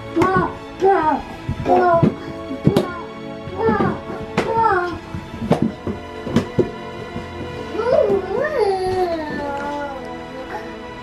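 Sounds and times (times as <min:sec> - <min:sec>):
background music: 0:00.0 - 0:11.0
toddler whining: 0:07.7 - 0:10.8.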